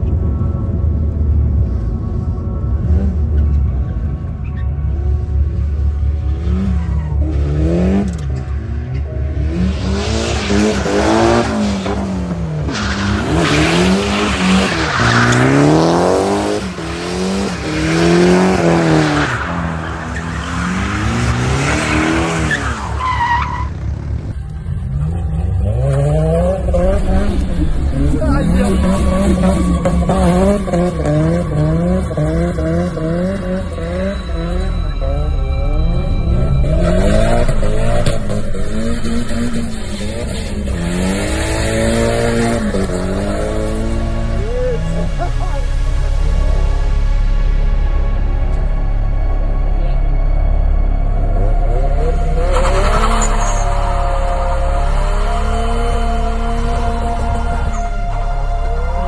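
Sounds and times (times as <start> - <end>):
car engine revving: 2.6 - 59.0
tyres squealing and skidding: 9.4 - 46.1, 51.6 - 59.0
tyre squeal: 18.5 - 24.3, 52.4 - 54.2.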